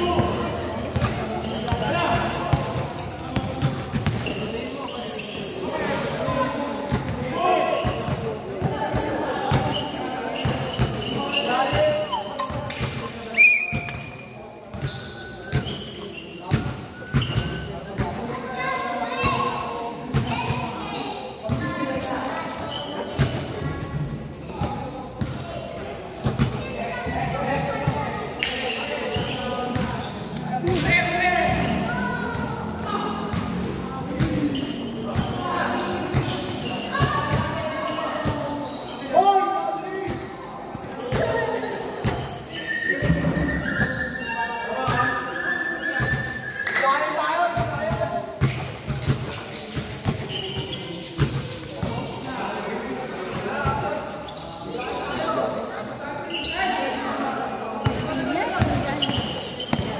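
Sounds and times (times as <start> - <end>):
basketballs bouncing on court: 0.0 - 4.5, 10.4 - 13.0, 14.7 - 15.8, 20.1 - 20.6, 33.2 - 35.4, 36.1 - 37.6, 40.8 - 41.4, 57.8 - 59.9
players' voices echoing: 0.0 - 59.9.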